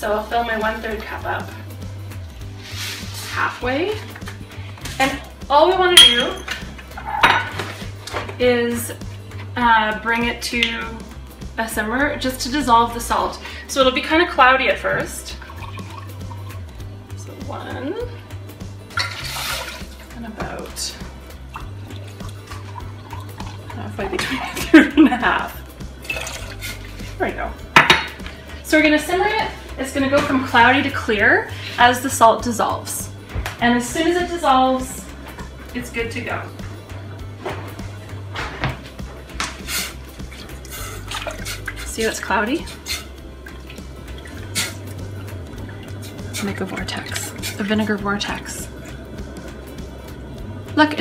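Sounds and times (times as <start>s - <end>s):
background music: 0.0s - 51.0s
utensil knocking metal pot: 6.0s - 7.6s, 27.7s - 28.2s
liquid pouring and splashing: 15.0s - 16.7s, 18.9s - 20.2s, 21.3s - 24.7s, 25.8s - 27.2s, 39.5s - 50.2s.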